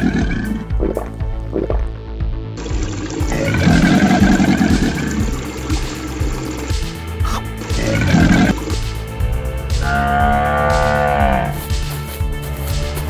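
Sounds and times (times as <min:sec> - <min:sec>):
background music: 0:00.0 - 0:13.0
cartoon animal roar: 0:09.8 - 0:11.6.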